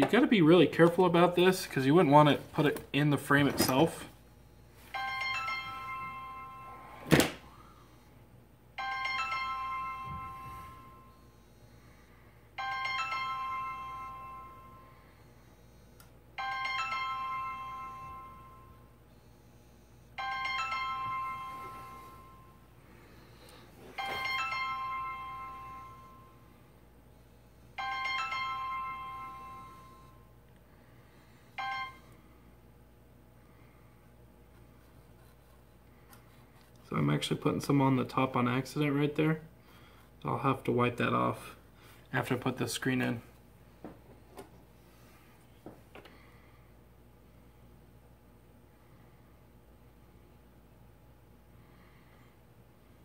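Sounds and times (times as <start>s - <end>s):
phone ringtone chime: 4.8s - 7.0s, 8.8s - 11.5s, 12.6s - 15.3s, 16.4s - 18.9s, 20.1s - 26.7s, 27.8s - 30.3s, 31.1s - 32.2s.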